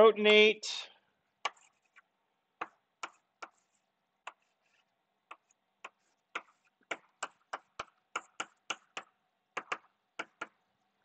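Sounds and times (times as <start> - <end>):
chalk tapping on blackboard: 1.4 - 10.6.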